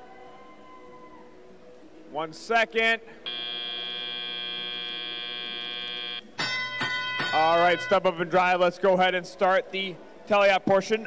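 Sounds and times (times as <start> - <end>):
long electronic buzzer: 3.2 - 6.3.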